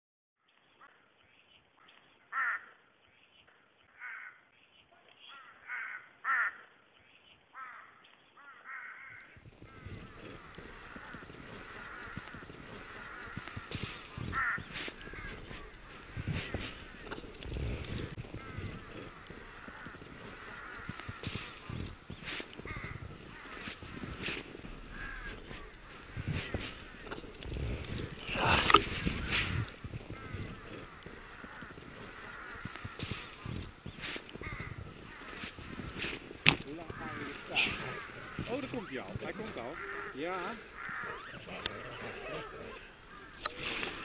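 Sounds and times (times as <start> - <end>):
short animal calls: 7.6 - 44.0.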